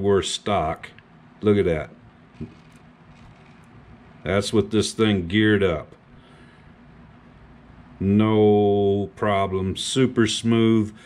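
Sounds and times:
small motor and gears humming: 1.8s - 5.0s.

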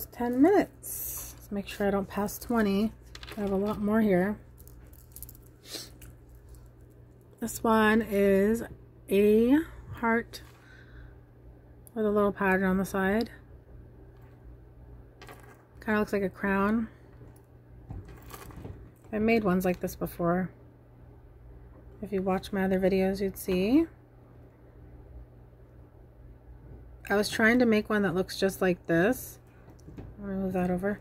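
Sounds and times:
jewelry clicking and rustling: 0.0s - 8.2s, 15.2s - 15.9s, 16.6s - 20.0s
low steady hum: 0.0s - 31.0s.

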